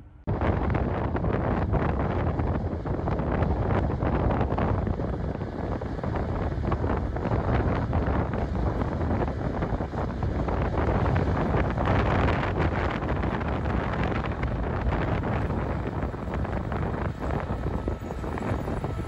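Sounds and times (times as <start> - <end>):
distant tractor running: 0.0 - 19.0
wind buffeting microphone: 0.0 - 19.0.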